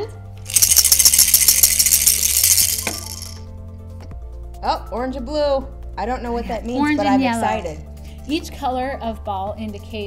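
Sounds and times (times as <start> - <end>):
plastic balls rattling in pieces: 0.4 - 3.4.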